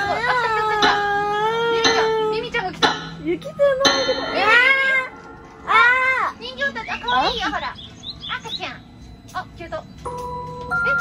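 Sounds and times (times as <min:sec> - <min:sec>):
bell-like chime ringing: 0:03.8 - 0:07.7.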